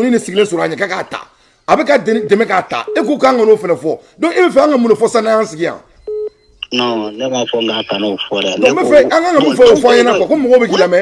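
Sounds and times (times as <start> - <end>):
man speaking: 0.0 - 5.9, 6.6 - 11.0.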